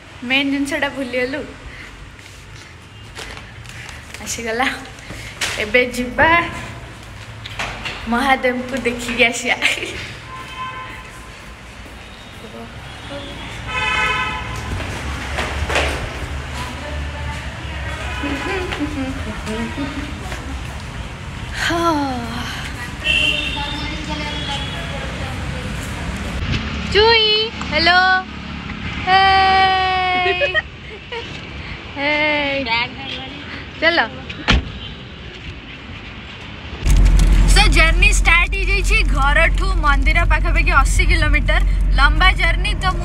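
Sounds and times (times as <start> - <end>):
vehicle horn: 10.3 - 11.4, 12.9 - 14.8, 17.9 - 18.8, 23.0 - 25.0
brief rushing noise: 36.8 - 43.0.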